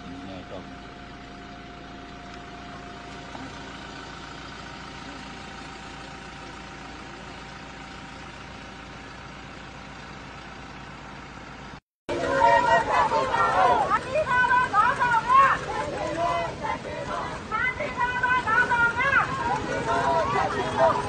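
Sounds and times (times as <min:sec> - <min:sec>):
vehicle engine humming: 0:00.0 - 0:21.0.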